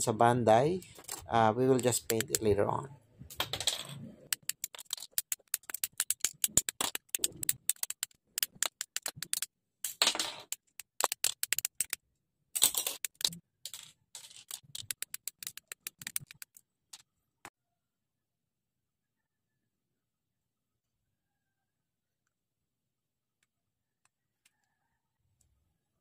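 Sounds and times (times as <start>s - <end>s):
nippers snipping plastic: 4.3s - 9.5s, 10.5s - 12.0s.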